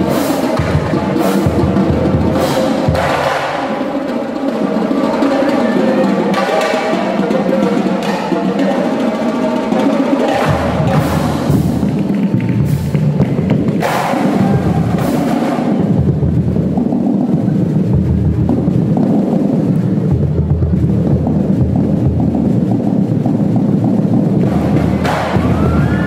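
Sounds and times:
marching drumline cadence: 0.0s - 26.0s.

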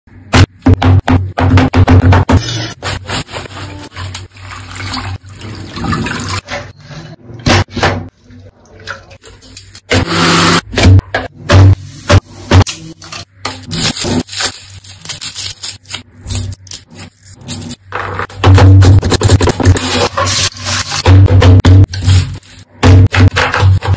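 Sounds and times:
blender running: 9.9s - 10.6s.

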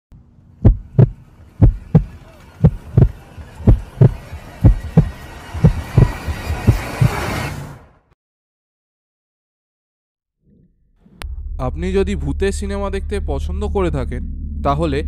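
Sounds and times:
heartbeat thumps: 0.6s - 7.2s.

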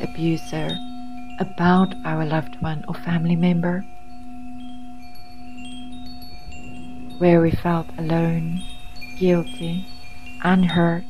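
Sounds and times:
high chimes ringing: 0.0s - 11.0s
low steady drone: 0.0s - 11.0s.

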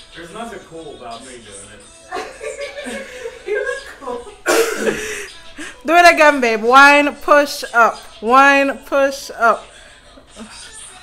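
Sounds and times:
man and woman talking: 0.2s - 11.0s
laughter: 2.1s - 5.5s
breathy cough: 4.4s - 5.2s.

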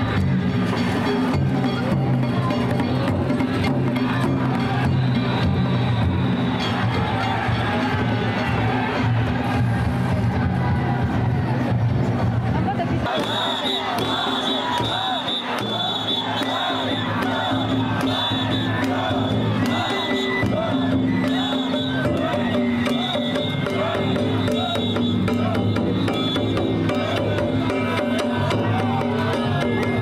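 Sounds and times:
drums and gongs rhythm: 0.0s - 30.0s
team shouting: 13.0s - 26.2s.

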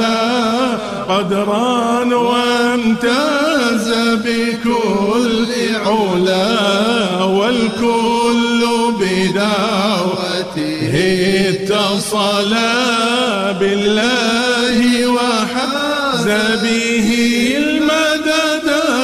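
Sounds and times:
devotional chanting: 0.0s - 19.0s.

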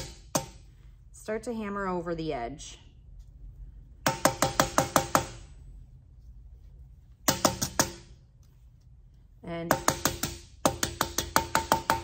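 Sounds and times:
mallet tapping copper sheet: 0.0s - 0.7s, 4.0s - 5.5s, 7.2s - 8.2s, 9.6s - 12.0s.

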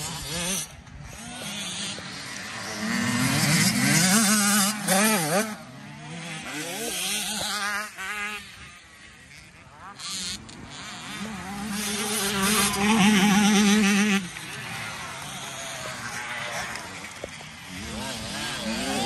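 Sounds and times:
dirt bike engines revving: 0.0s - 19.0s.

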